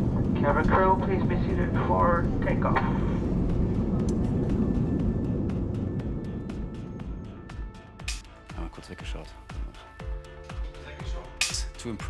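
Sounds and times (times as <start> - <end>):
jet engines rumbling: 0.0 - 9.8.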